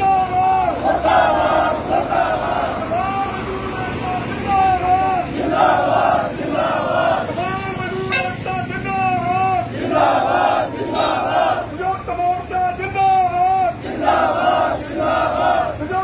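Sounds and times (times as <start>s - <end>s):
man shouting a line: 0.0s - 0.8s, 2.9s - 5.3s, 7.3s - 9.7s, 11.7s - 13.8s
crowd shouting in response: 0.0s - 7.8s, 8.8s - 11.9s, 13.7s - 16.0s.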